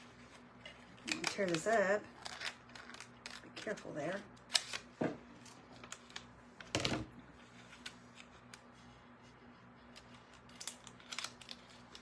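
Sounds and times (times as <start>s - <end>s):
low steady hum: 0.0s - 12.0s
paper sheet crackling: 0.2s - 6.3s, 7.5s - 12.0s.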